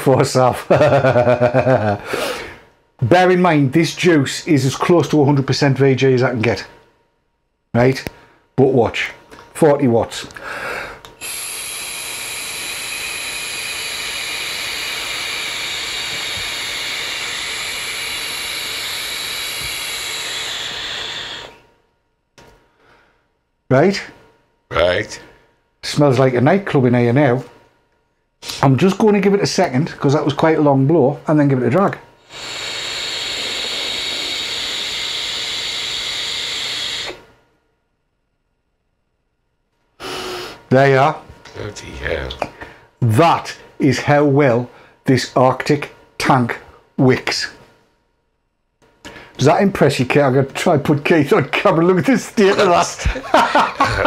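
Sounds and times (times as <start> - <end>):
airy hiss of vape drag: 11.2 - 21.6, 32.2 - 37.3.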